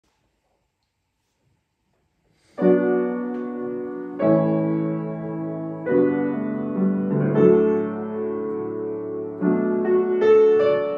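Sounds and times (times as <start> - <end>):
piano chord: 2.6 - 10.9.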